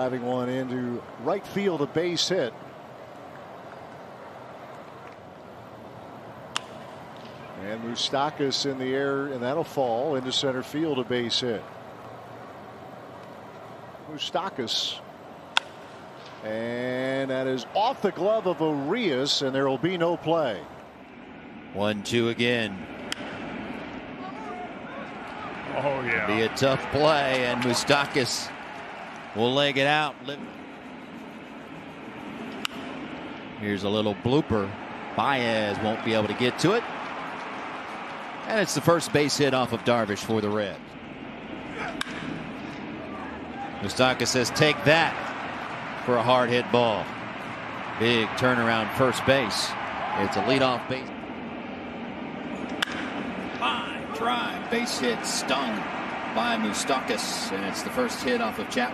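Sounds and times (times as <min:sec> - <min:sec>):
ballpark broadcast hum: 0:00.0 - 0:58.9
stadium background noise: 0:00.0 - 0:58.9
baseball bat cracking ball: 0:06.5 - 0:07.4, 0:15.5 - 0:16.4, 0:23.0 - 0:23.7, 0:32.4 - 0:33.1, 0:41.7 - 0:42.9, 0:52.6 - 0:53.6.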